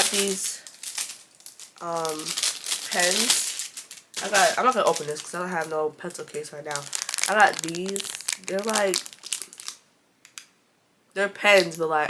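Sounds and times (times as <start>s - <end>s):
plastic packaging crinkling: 0.0s - 10.5s.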